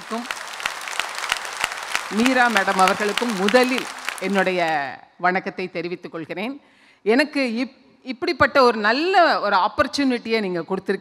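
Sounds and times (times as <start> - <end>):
audience applauding: 0.0 - 4.9
woman's voice: 2.1 - 11.0.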